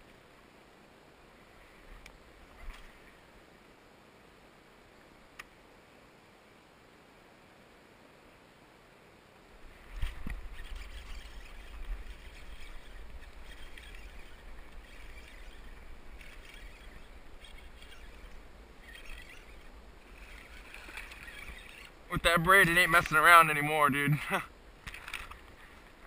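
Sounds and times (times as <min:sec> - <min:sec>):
water sloshing and splashing: 0:20.0 - 0:21.9.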